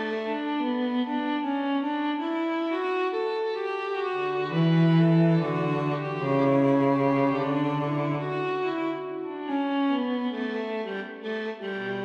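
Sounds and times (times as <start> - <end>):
sampled bowed strings: 0.0 - 12.0.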